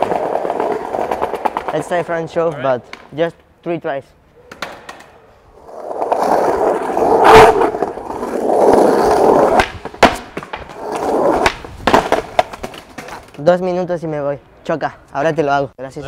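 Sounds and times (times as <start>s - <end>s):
skateboard rolling on stone: 0.0s - 2.5s, 5.5s - 13.5s
skateboard clacks: 0.0s - 3.0s, 7.2s - 13.4s.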